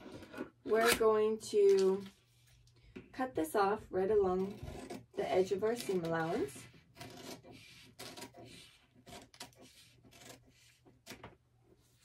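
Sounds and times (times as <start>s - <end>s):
scissors snipping paper: 4.4s - 11.2s.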